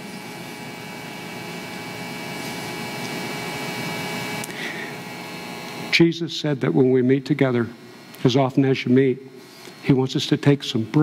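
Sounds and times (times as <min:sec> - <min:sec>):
steady hum: 0:00.0 - 0:11.0.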